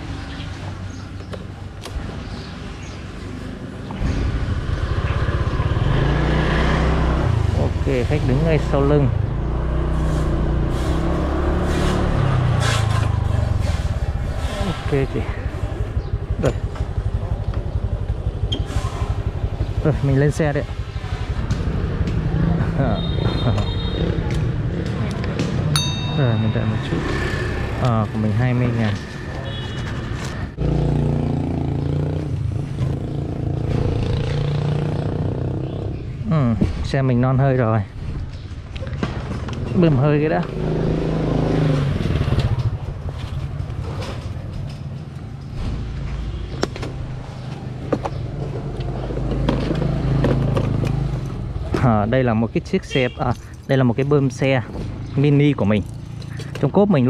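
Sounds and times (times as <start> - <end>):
street traffic: 0.0 - 57.0
motorcycle passing: 3.4 - 36.5, 39.6 - 51.8, 54.6 - 56.7
electronic chime: 25.8 - 27.4.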